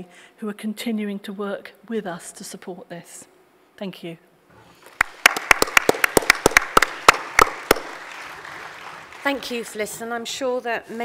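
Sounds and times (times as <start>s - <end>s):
fast sharp close claps: 4.9s - 9.4s
audience applause: 4.9s - 9.8s.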